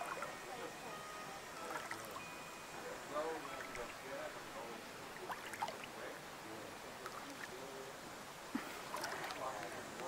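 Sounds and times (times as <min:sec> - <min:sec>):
water lapping and trickling: 0:00.0 - 0:00.4, 0:01.6 - 0:02.2, 0:03.4 - 0:04.1, 0:05.0 - 0:06.1, 0:06.9 - 0:07.7, 0:08.5 - 0:09.8.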